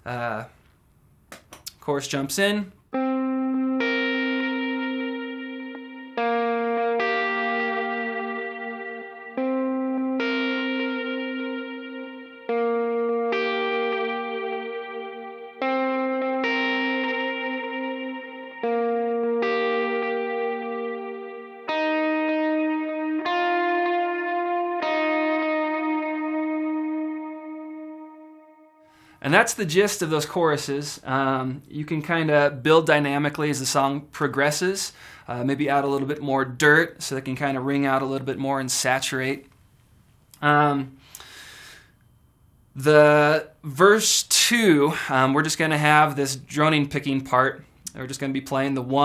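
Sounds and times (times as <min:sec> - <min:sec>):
electric guitar picked notes with delay: 0:02.9 - 0:29.0.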